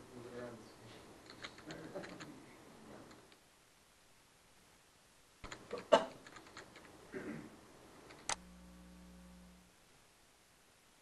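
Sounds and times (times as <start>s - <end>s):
keyboard keystroke clicks: 1.3s - 2.3s, 5.4s - 6.9s.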